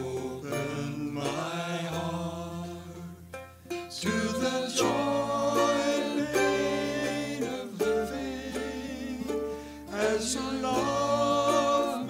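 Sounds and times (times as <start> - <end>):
man singing long held notes: 0.0 - 3.2, 3.9 - 12.0
mandolin: 0.0 - 12.0.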